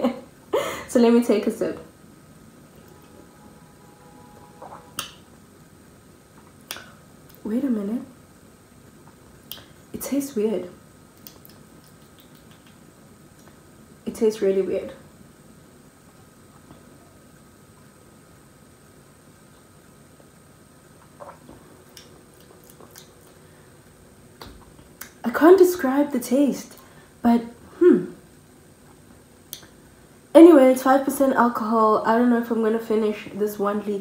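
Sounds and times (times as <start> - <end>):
lip smack: 6.6 - 7.4, 9.4 - 9.8, 11.2 - 13.6.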